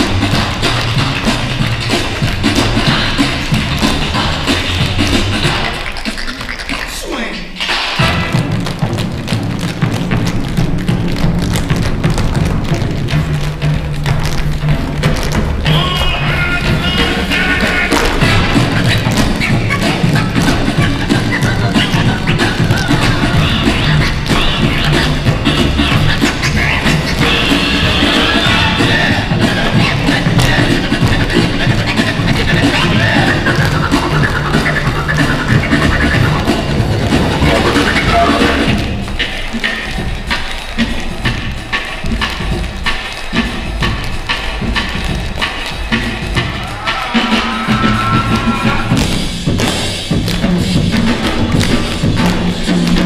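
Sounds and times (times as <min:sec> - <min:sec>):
tap shoes striking stage floor: 0:00.0 - 0:06.9, 0:07.6 - 0:53.0
recorded music: 0:00.0 - 0:53.0.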